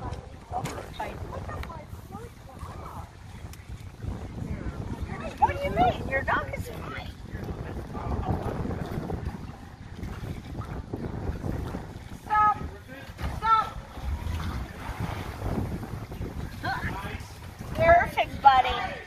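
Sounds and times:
boat motor rumbling: 0:00.0 - 0:19.0
wind buffeting microphone: 0:00.0 - 0:19.0.

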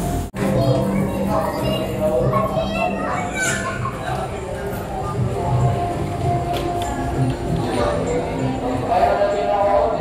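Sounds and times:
background music: 0:00.0 - 0:10.0
children chattering: 0:00.4 - 0:10.0.

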